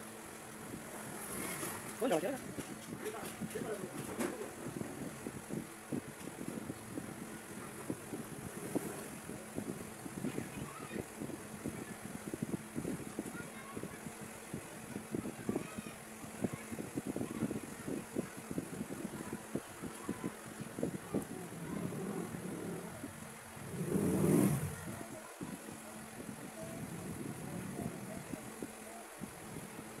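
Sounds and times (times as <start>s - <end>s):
motor vehicle passing: 21.5s - 24.9s.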